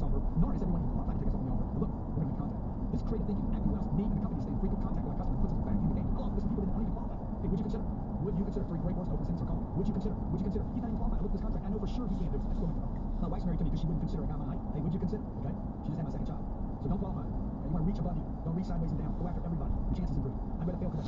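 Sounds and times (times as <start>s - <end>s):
car road and tyre noise: 0.0s - 21.0s.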